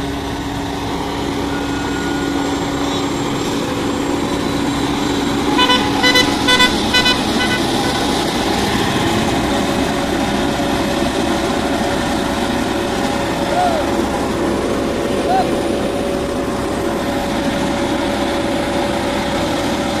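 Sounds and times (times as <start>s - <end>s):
diesel engines running: 0.0s - 20.0s
vehicle horn short toots: 5.5s - 8.2s.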